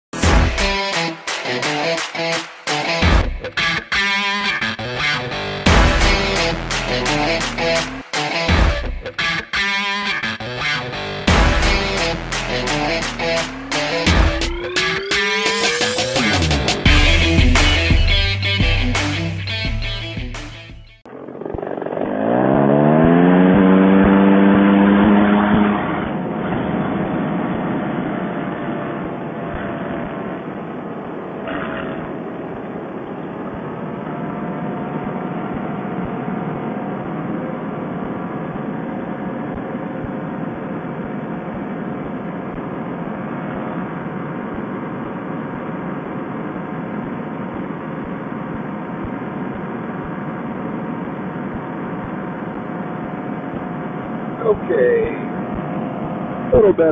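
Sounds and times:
music: 0.2s - 21.1s
paramotor engine and propeller: 21.1s - 56.7s.

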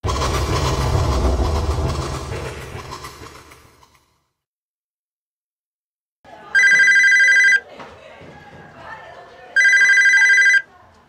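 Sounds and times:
deep noisy impact hit: 0.0s - 3.6s
telephone ringing: 6.5s - 7.6s, 9.6s - 10.7s.

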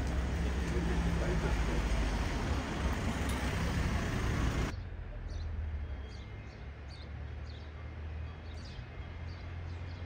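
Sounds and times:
car traffic rumble: 0.0s - 10.0s.

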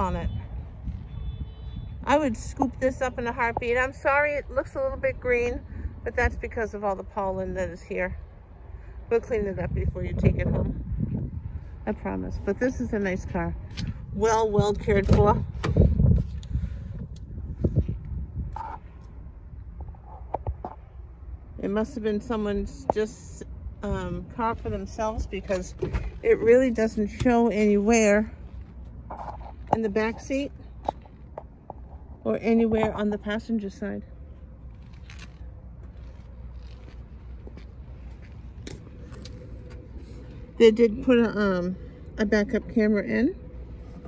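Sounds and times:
wind rumbling on microphone: 0.0s - 44.0s.

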